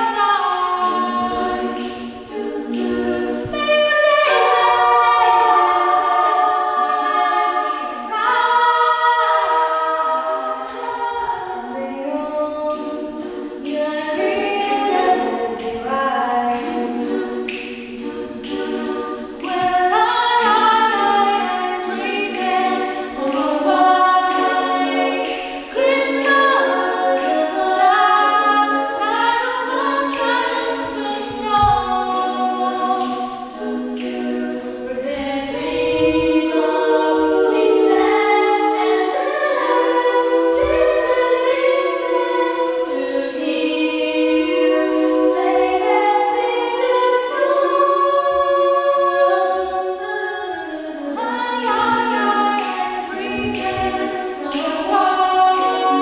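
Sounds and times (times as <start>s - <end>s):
female choir singing unaccompanied: 0.0s - 56.0s.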